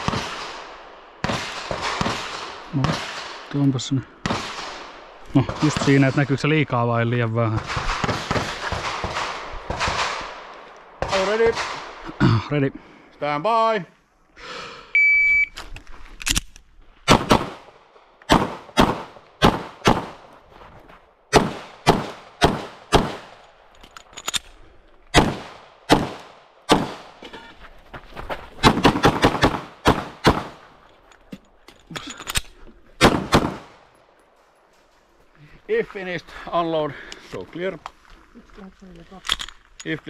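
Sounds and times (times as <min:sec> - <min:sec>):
pistol shots: 0:00.0 - 0:03.5, 0:04.2 - 0:06.2, 0:07.5 - 0:12.0, 0:17.0 - 0:20.2, 0:21.3 - 0:23.4, 0:25.1 - 0:27.2, 0:28.6 - 0:30.7, 0:33.0 - 0:33.9
shot timer beep: 0:15.0 - 0:15.6.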